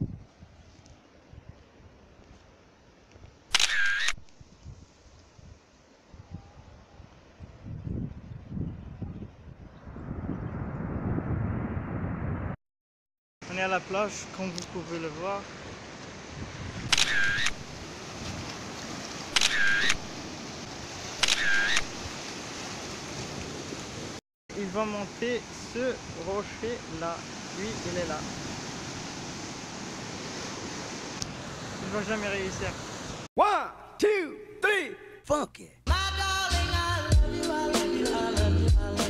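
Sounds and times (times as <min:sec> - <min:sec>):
camera shutter click: 0:03.5 - 0:04.2, 0:16.9 - 0:17.6, 0:19.4 - 0:20.0, 0:21.2 - 0:21.9
surf and wind hiss: 0:04.3 - 0:08.6, 0:13.4 - 0:33.3.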